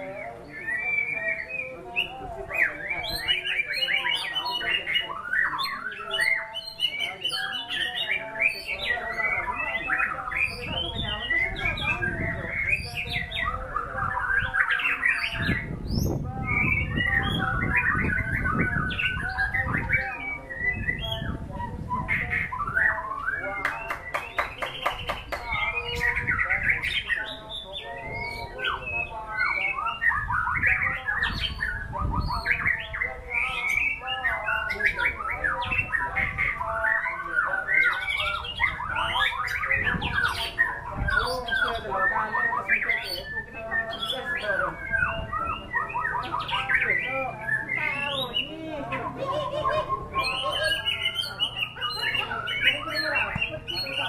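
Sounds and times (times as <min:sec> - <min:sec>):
songbird singing whistles and trills: 0:00.0 - 0:54.0.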